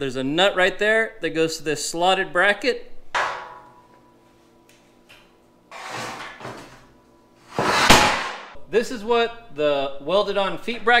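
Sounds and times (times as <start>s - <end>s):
metal knock ringing: 3.2s - 3.8s
short scraping noise: 5.7s - 6.5s, 7.5s - 8.6s.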